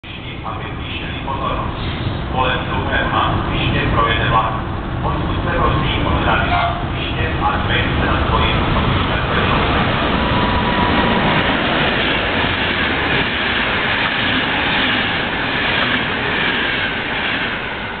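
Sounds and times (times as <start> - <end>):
passenger train passing: 0.0 - 18.0
rush of train wheels: 5.2 - 18.0.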